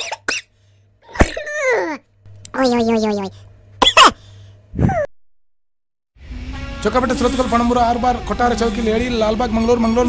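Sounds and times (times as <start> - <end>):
sharp cough-like burst: 0.0 - 0.5, 3.8 - 4.3.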